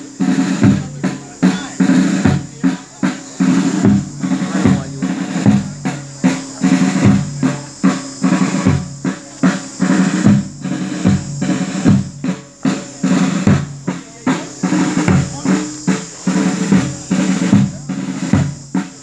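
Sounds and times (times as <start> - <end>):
held low notes: 0.0 - 18.8
marching snare and bass drums: 0.0 - 19.0.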